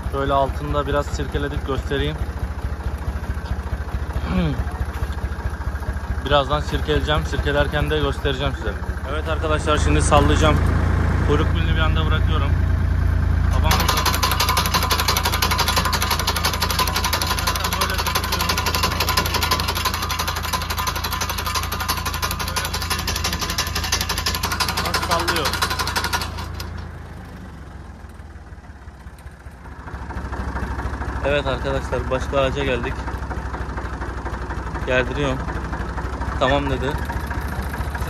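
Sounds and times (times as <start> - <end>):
tractor engine running: 0.0 - 38.0
tree shaker mechanical clatter: 13.5 - 27.0, 29.0 - 38.0.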